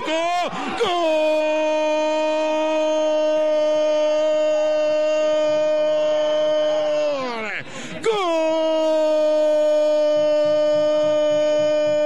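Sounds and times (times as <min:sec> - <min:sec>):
commentator's drawn-out goal cry: 0:00.0 - 0:12.0.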